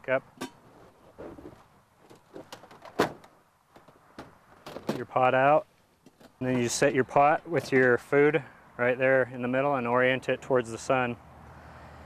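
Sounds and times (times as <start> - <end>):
metal panels clicking and knocking: 0.4 - 5.2.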